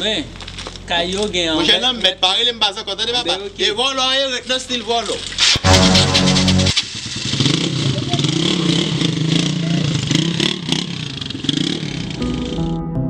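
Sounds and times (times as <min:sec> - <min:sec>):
motorcycle engine revving: 0:05.6 - 0:12.2.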